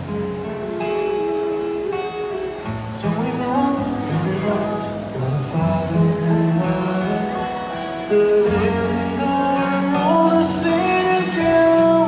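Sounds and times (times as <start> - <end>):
acoustic guitar: 0.0 - 12.0
person singing: 1.0 - 12.0.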